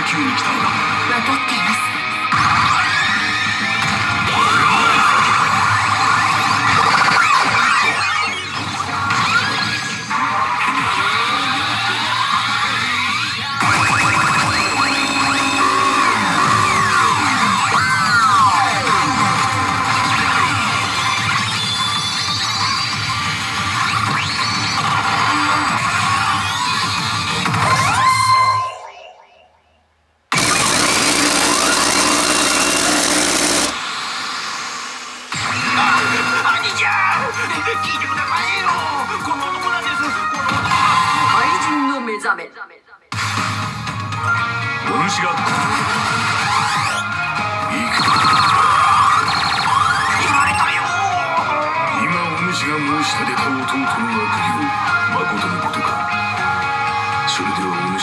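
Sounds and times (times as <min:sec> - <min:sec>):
pachinko machine music: 0:04.4 - 0:08.7, 0:13.6 - 0:21.0, 0:30.3 - 0:34.0, 0:47.8 - 0:50.9.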